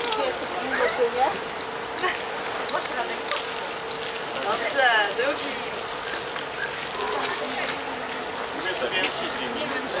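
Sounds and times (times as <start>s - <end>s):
constant hum: 0.0s - 10.0s
faint voices talking: 0.0s - 10.0s.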